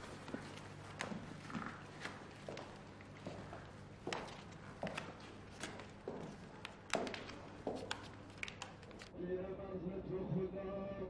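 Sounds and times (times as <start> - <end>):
footsteps: 0.0 - 9.1.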